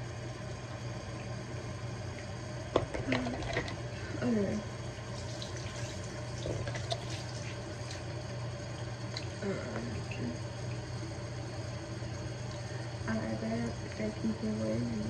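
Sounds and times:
faucet running into sink: 4.9s - 8.0s.

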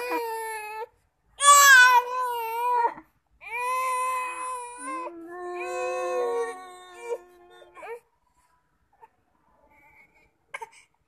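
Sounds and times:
baby crying: 0.0s - 8.0s.

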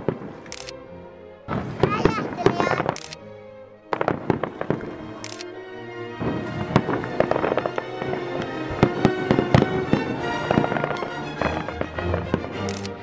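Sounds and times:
music playing: 0.0s - 13.0s
fireworks bangs and crackles: 1.5s - 3.0s, 3.9s - 5.0s, 6.2s - 12.7s.

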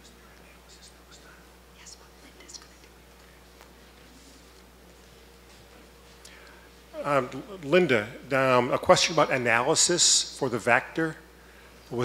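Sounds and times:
whispering and low murmur: 0.0s - 4.8s
soft hisses: 0.0s - 7.6s
low electrical hum: 0.0s - 12.0s.

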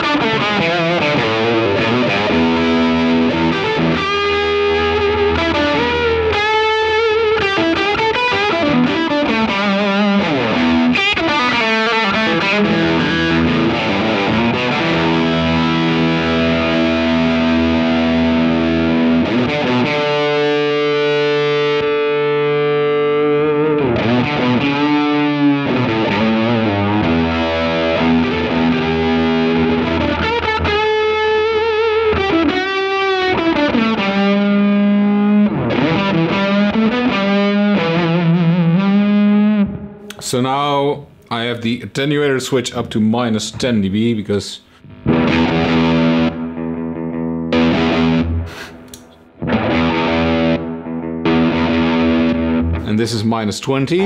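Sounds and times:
distorted electric guitar: 0.0s - 41.3s, 44.6s - 54.0s.

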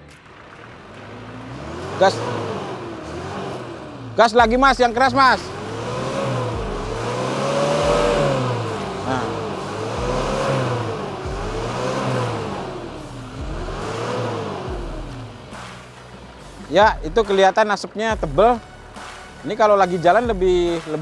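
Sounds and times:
diesel engine revving: 0.0s - 21.0s.

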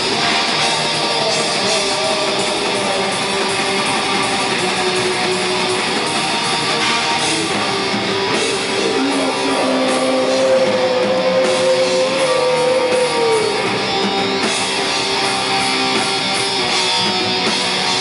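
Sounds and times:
distorted electric guitars: 0.0s - 18.0s
drums and cymbals: 0.0s - 18.0s.

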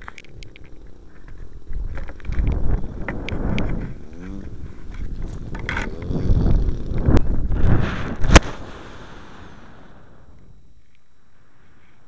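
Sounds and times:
wind buffeting microphone: 0.0s - 10.7s.

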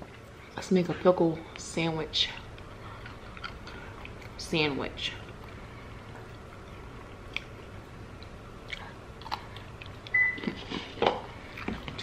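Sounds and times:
soft crunches and mouth clicks: 2.4s - 4.4s, 5.2s - 12.0s
person chewing: 2.5s - 4.4s, 5.2s - 12.0s.

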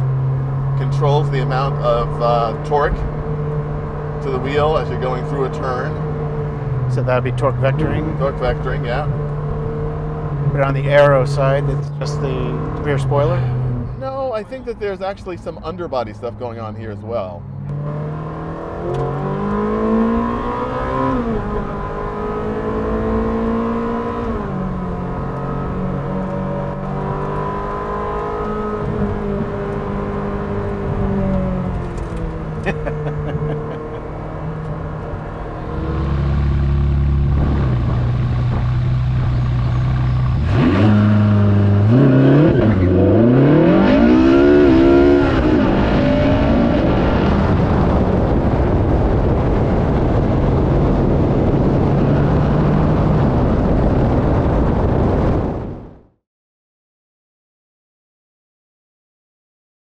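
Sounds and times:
sports car engine revving: 0.0s - 14.7s, 17.4s - 54.5s.

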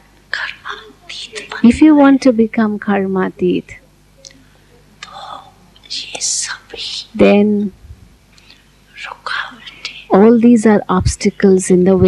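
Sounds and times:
woman whispering: 0.3s - 2.1s, 5.0s - 7.4s, 9.0s - 10.4s.

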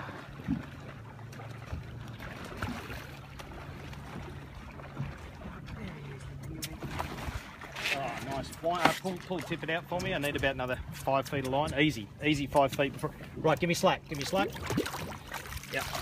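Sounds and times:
boat motor humming: 0.0s - 16.0s
water noise: 0.0s - 16.0s.

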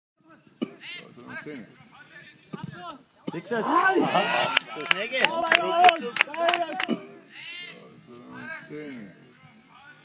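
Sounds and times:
voices calling and shouting: 0.2s - 10.0s.

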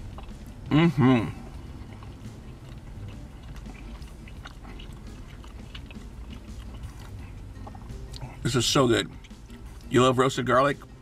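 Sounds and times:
chewing mouth clicks and smacks: 0.0s - 0.7s, 1.3s - 8.4s, 9.0s - 9.9s
low steady hum: 0.0s - 11.0s.

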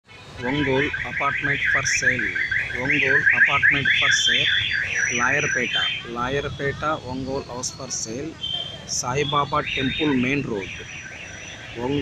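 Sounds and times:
man talking: 0.4s - 11.0s, 11.7s - 12.0s
warbling alarm tone: 0.4s - 12.0s.

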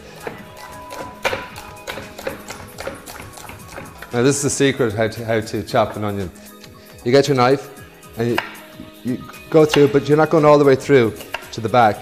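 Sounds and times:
soft background music: 0.0s - 12.0s
knife chopping on wooden board: 0.2s - 4.2s, 8.3s - 10.1s, 11.2s - 11.6s.

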